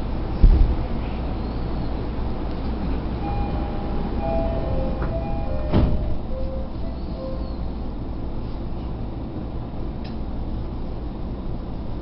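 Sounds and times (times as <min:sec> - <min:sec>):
train rumbling: 0:00.0 - 0:12.0
short high tones: 0:03.2 - 0:07.8.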